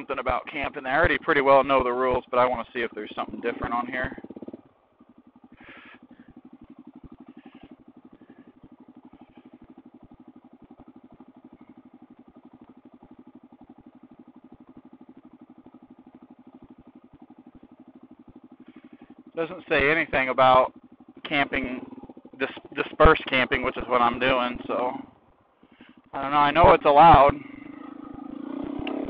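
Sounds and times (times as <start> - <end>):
motorcycle engine idling: 0.0 - 29.0.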